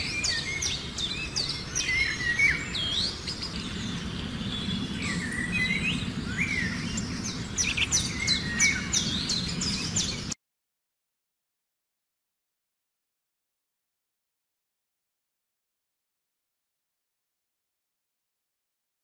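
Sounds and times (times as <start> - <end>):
birds chirping: 0.0 - 10.4
steady low hum: 0.0 - 10.4.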